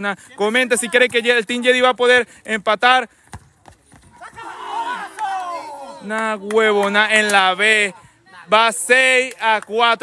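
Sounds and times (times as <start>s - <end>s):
players shouting: 4.1s - 8.9s.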